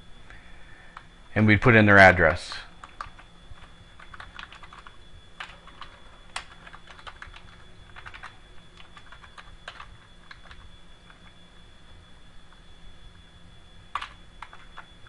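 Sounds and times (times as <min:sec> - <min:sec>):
keyboard typing: 0:02.8 - 0:11.3, 0:13.9 - 0:14.9.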